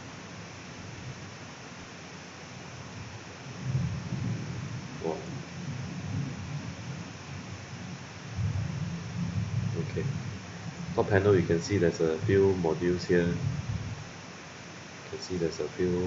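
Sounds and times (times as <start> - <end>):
microphone hiss: 0.0 - 16.0
low rumble: 3.5 - 14.2.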